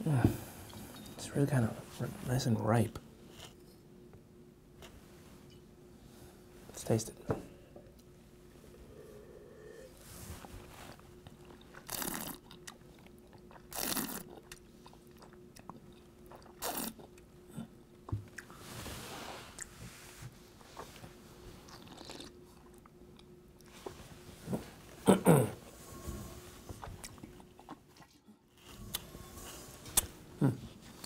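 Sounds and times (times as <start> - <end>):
soft breath: 8.7 - 10.9.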